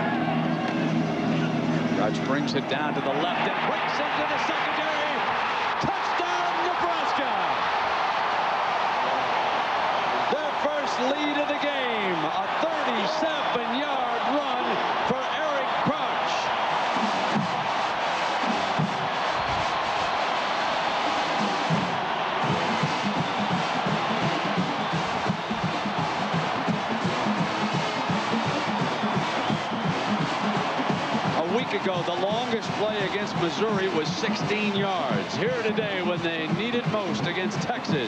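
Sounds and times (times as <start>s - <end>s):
stadium crowd cheering: 0.0s - 38.0s.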